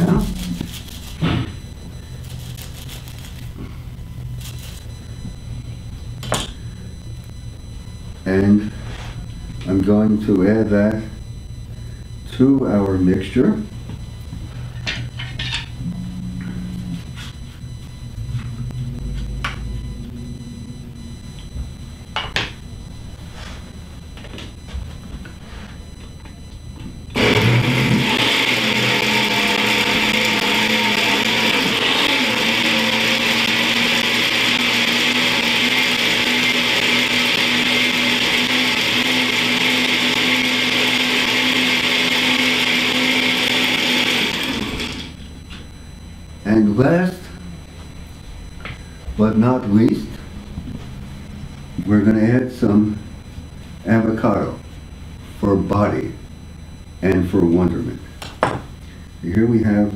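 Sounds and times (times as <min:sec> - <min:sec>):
blender running: 0:27.2 - 0:45.2.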